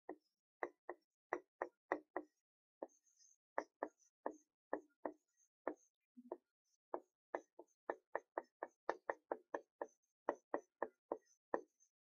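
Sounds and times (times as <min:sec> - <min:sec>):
marker pen ticking on whiteboard: 0:00.1 - 0:03.0, 0:03.6 - 0:12.0.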